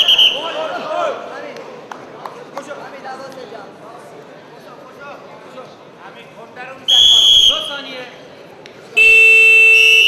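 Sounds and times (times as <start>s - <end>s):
referee's whistle blast: 0.0s - 0.6s, 6.9s - 7.9s, 9.0s - 10.0s.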